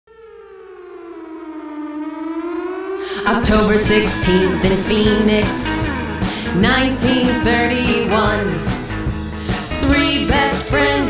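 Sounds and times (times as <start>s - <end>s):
siren sliding down in pitch: 0.1s - 5.7s.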